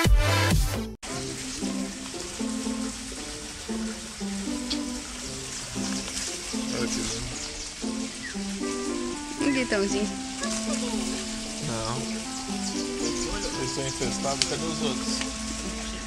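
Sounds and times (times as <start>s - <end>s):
loud electronic dance music: 0.0s - 0.9s
steady hiss: 1.0s - 16.0s
soft stepped-note tune: 1.1s - 16.0s.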